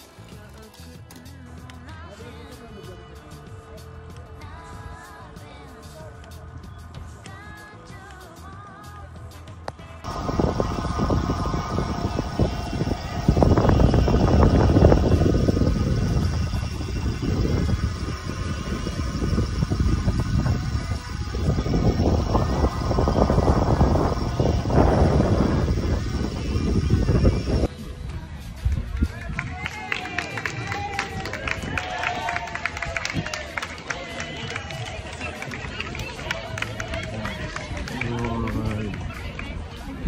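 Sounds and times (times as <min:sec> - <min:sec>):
wind buffeting microphone: 0:10.0 - 0:29.8, 0:30.5 - 0:33.6
crowd chatter: 0:10.0 - 0:40.0.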